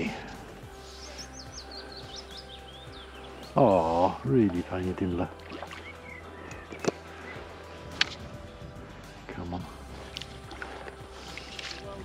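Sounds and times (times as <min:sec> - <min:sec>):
faint background music: 0:00.0 - 0:12.0
small songbird chirping: 0:00.0 - 0:12.0.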